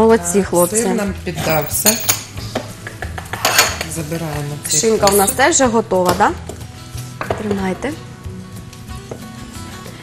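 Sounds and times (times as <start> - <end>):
utensils clattering: 1.4 - 2.3, 4.7 - 5.4
dishes clinking: 1.4 - 2.4, 4.7 - 5.4.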